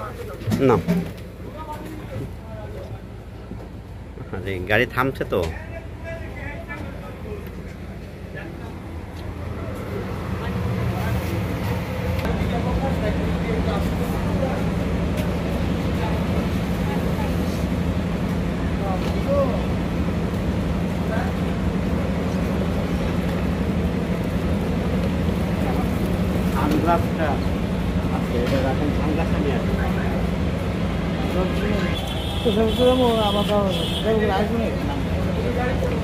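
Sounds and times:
bus engine idling: 0:00.0 - 0:36.0
faint voices talking: 0:00.0 - 0:36.0.

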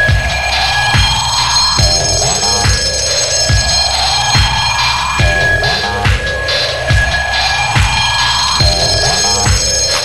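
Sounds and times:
electronic dance music: 0:00.0 - 0:10.0
heavy kick drum: 0:00.0 - 0:10.0
high ringing synth tones: 0:00.0 - 0:10.0.

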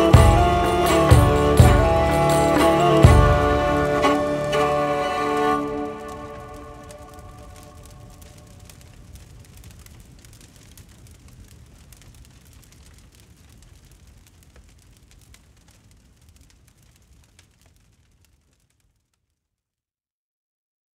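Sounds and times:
small crackles: 0:03.9 - 0:19.8.

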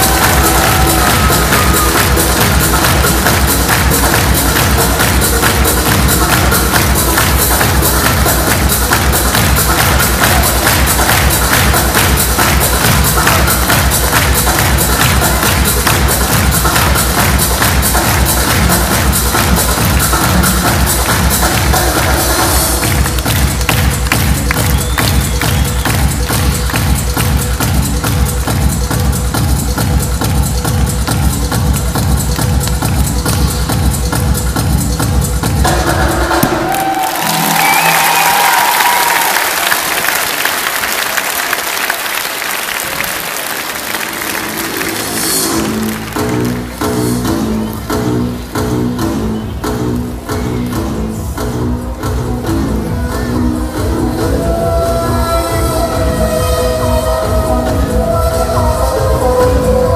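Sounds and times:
audience applause: 0:00.0 - 0:27.6, 0:36.4 - 0:46.8
electronic dance music: 0:00.0 - 0:59.9.

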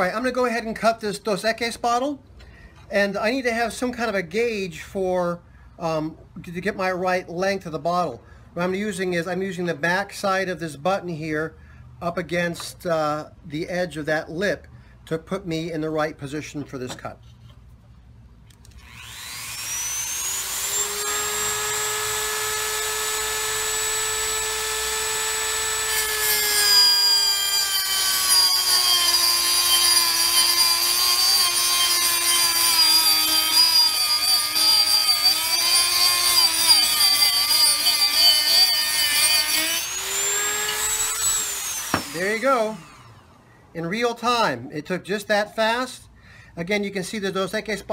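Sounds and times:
rotary tool high whine: 0:18.6 - 0:43.4.

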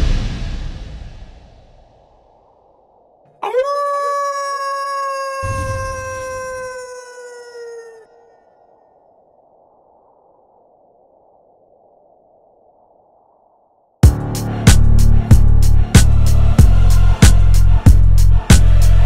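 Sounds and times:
low rumble: 0:00.0 - 0:03.2
wolf howl: 0:03.3 - 0:08.5.

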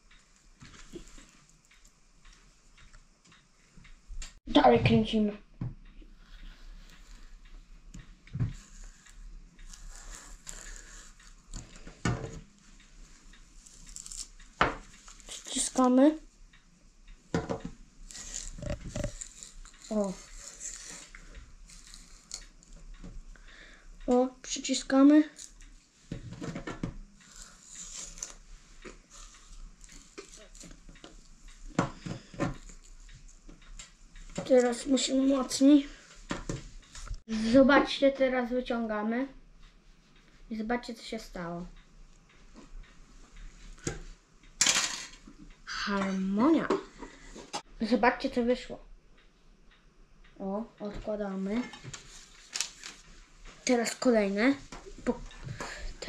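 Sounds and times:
spiral cutter scraping potato: 0:08.5 - 0:11.8, 0:13.6 - 0:14.4, 0:18.1 - 0:22.4, 0:27.2 - 0:28.4
blade crunching through potato: 0:08.6 - 0:11.4.

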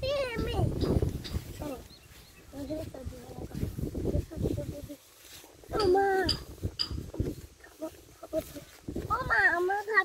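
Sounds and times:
low thuds: 0:00.0 - 0:04.8
young children's voices: 0:00.0 - 0:10.0.

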